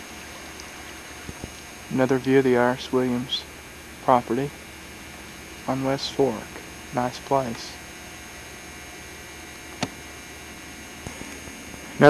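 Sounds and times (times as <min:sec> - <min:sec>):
tape hiss with faint hum: 0:00.0 - 0:12.0.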